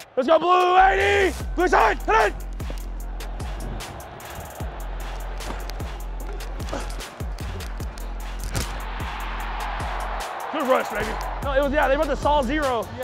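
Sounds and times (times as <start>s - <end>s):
music with deep bass beat: 1.2s - 13.0s
crowd noise: 1.7s - 13.0s.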